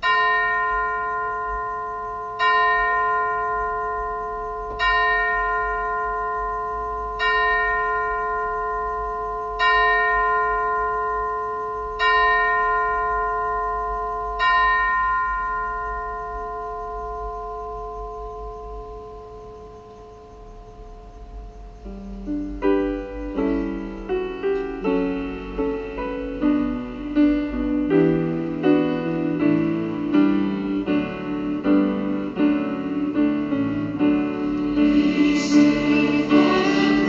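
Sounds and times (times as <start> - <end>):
church bell tolling: 0.0 - 21.7, 22.4 - 37.0.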